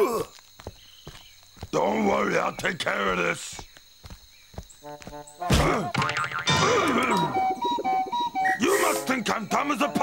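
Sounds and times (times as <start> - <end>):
springy boing: 5.5 - 7.4.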